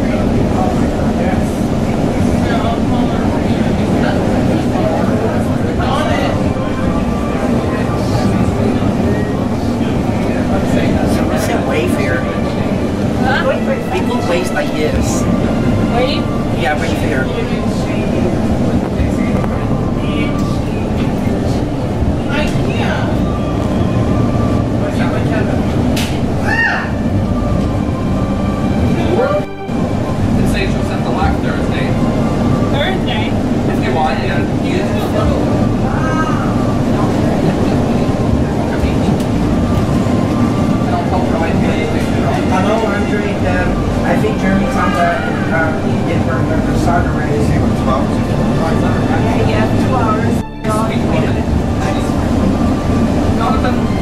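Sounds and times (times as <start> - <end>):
passengers talking indistinctly: 0.0 - 54.0
train rumbling on track: 0.0 - 54.0.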